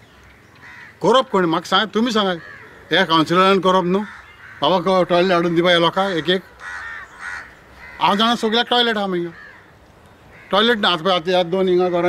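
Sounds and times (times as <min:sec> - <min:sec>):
bird harsh calls: 0:00.0 - 0:12.0
man talking: 0:01.0 - 0:06.6, 0:08.0 - 0:09.4, 0:10.5 - 0:12.0.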